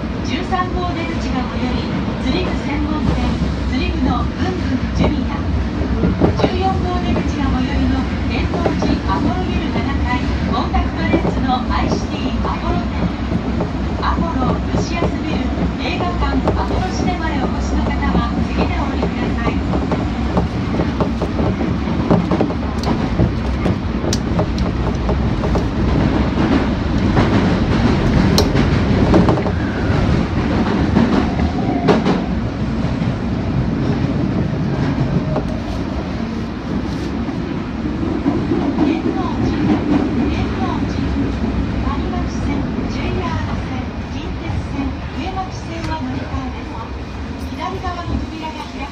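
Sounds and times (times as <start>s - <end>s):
train wheels rumbling on rail: 0.0s - 48.9s.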